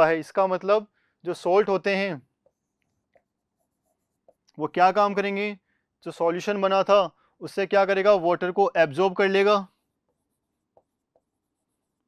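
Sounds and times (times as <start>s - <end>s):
marker writing on board: 2.4s - 4.5s, 10.0s - 12.0s.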